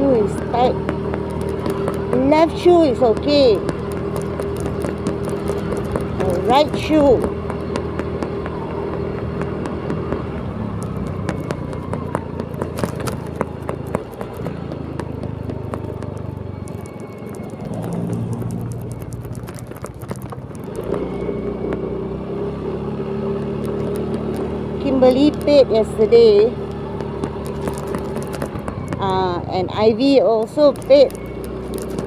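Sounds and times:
scooter engine humming: 0.0s - 32.0s
wind and road noise: 0.0s - 32.0s.

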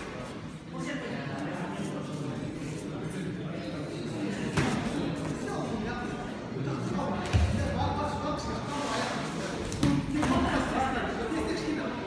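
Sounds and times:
people talking in a hall: 0.0s - 12.0s.

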